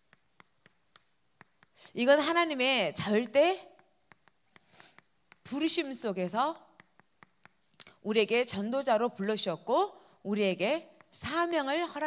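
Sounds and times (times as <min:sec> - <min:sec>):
chalk tapping and scratching: 0:00.0 - 0:12.0
woman speaking: 0:01.9 - 0:03.7, 0:05.5 - 0:06.7, 0:08.0 - 0:12.0.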